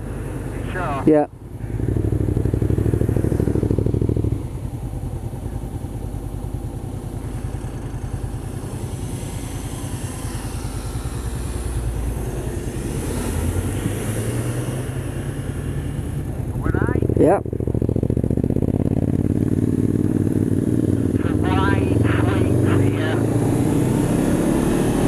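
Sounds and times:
motorcycle engine running: 0:00.0 - 0:25.0
car passing by: 0:08.5 - 0:16.1.

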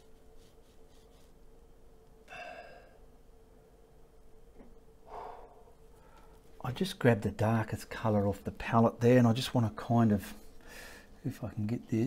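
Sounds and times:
faint steady hum: 0:00.0 - 0:12.0
man sighing breaths: 0:02.3 - 0:03.0, 0:05.1 - 0:06.4.

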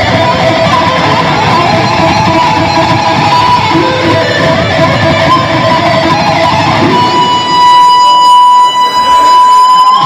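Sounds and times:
electric guitar long high note: 0:00.0 - 0:10.0.

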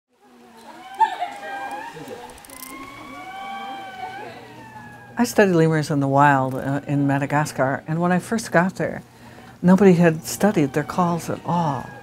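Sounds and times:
lemurs calling: 0:00.4 - 0:07.8, 0:09.2 - 0:12.0.

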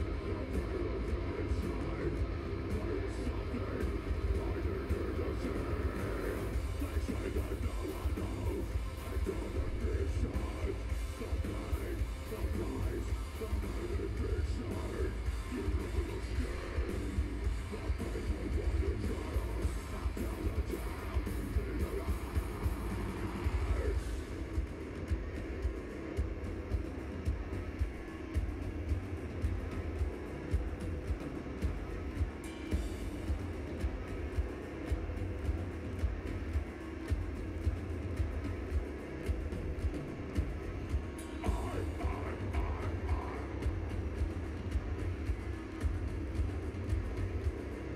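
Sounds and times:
drum beat: 0:00.0 - 0:47.9
live metal band playing: 0:00.0 - 0:47.9.

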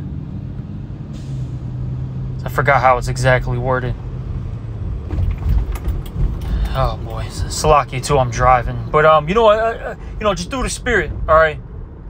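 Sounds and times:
car engine and tyres droning: 0:00.0 - 0:12.0.

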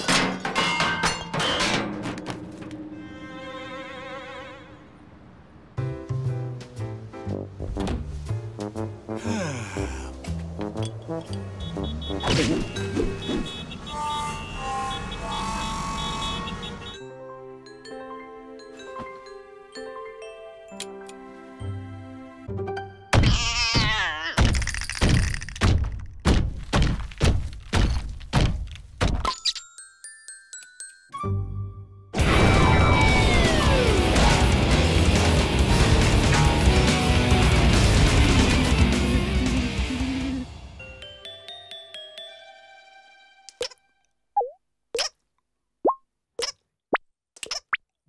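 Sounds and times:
heavy cartoon pounding thuds: 0:25.6 - 0:29.2
cartoon water drips plinking: 0:44.4 - 0:45.2.

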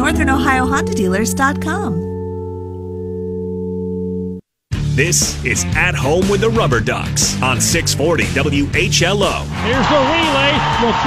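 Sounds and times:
held music chord: 0:00.0 - 0:09.1
radio jingle with music and voice: 0:04.7 - 0:11.0.

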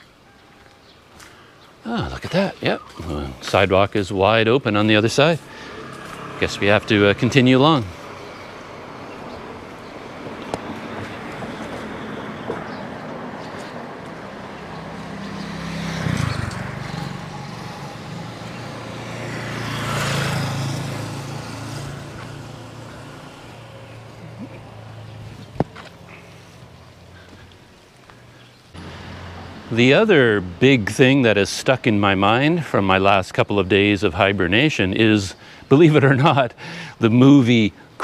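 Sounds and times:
vehicles passing close by: 0:00.0 - 0:38.0
small motorcycle passing: 0:04.8 - 0:27.4, 0:28.8 - 0:30.8.

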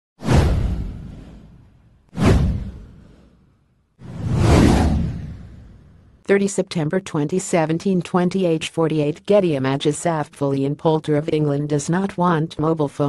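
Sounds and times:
whoosh sound effects: 0:00.2 - 0:06.1.

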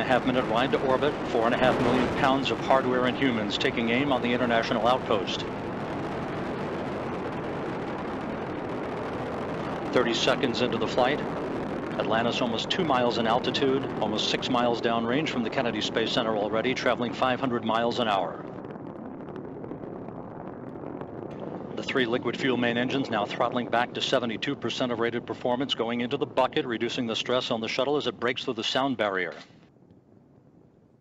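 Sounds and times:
man speaking: 0:00.0 - 0:05.5, 0:09.9 - 0:11.3, 0:12.0 - 0:18.4, 0:21.8 - 0:29.4
rocket engines rumbling: 0:00.0 - 0:30.8.

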